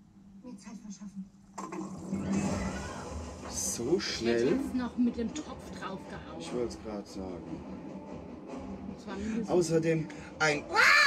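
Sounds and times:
film soundtrack from television: 0.0 - 11.0.

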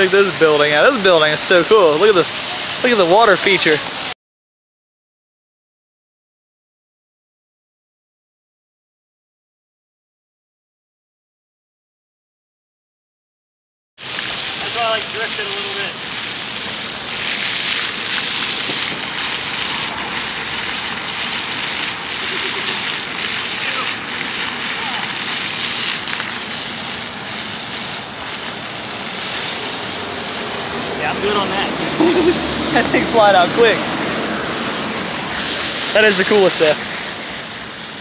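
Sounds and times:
fountain water splashing: 0.0 - 4.2, 14.0 - 38.0
faint voices: 22.2 - 25.2.

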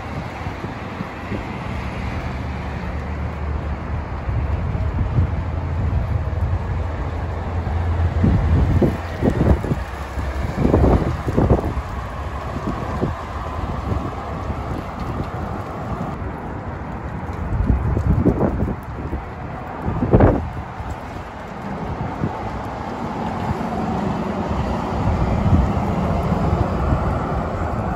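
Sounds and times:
bus driving by: 0.0 - 27.9
road traffic: 0.0 - 27.9
wind buffeting microphone: 0.0 - 27.9.

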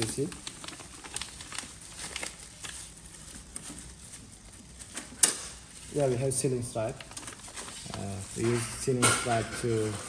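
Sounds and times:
plastic packaging crinkling: 0.0 - 9.9.

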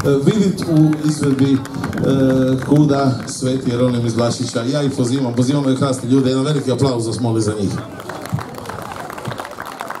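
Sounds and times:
audience applauding: 0.0 - 6.7, 7.5 - 10.0.

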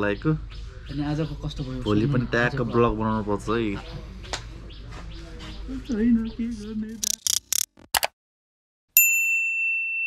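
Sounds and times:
bell-like ding: 9.0 - 10.0.

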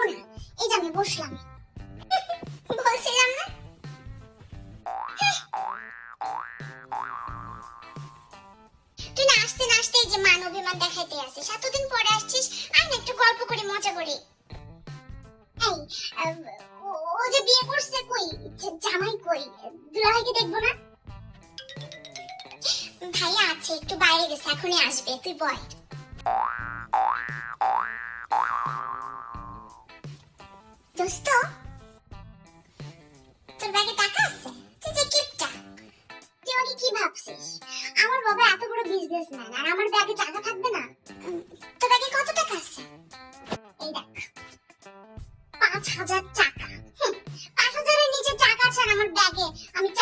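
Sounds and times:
light background music: 0.0 - 50.0
cartoon boing pitch glides: 4.9 - 8.1, 26.3 - 29.8.

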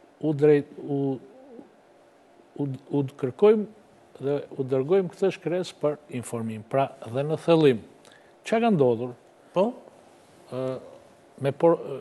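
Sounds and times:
man reading aloud: 0.2 - 1.3.

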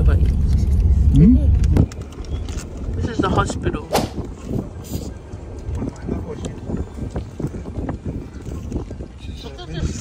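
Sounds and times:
moving car rumble: 0.0 - 10.0
wind buffeting microphone: 0.2 - 10.0.

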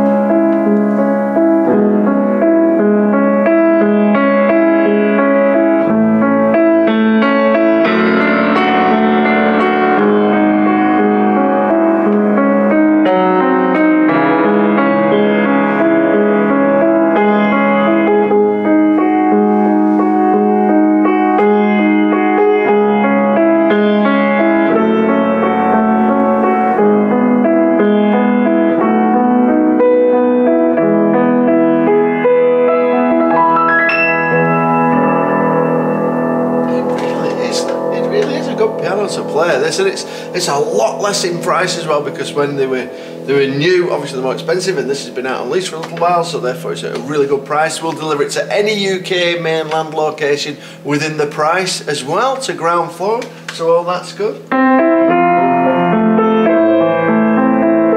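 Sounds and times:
classical piano playing: 0.0 - 57.9.

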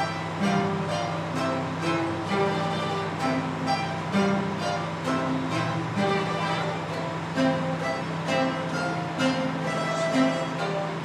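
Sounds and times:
guitar and mandolin ensemble: 0.0 - 11.0.

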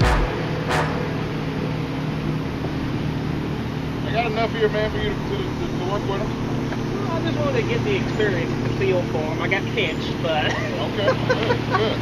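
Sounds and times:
low thump: 0.0 - 1.0.

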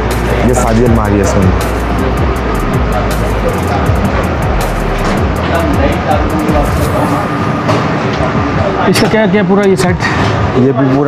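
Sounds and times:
music playing: 0.0 - 10.7
indistinct voices: 0.0 - 11.0
low rumble of traffic: 0.0 - 11.0.

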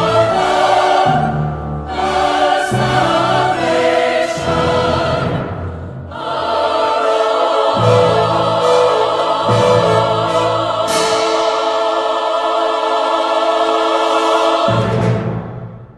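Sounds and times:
choir singing held chords: 0.0 - 15.9.

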